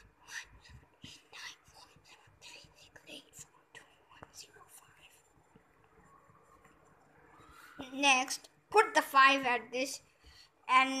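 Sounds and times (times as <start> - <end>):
person whispering: 0.0 - 5.4
marker scratching on whiteboard: 0.2 - 5.2.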